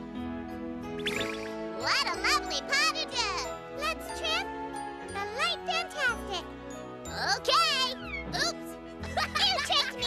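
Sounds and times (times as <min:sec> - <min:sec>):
bright children's music: 0:00.0 - 0:10.0.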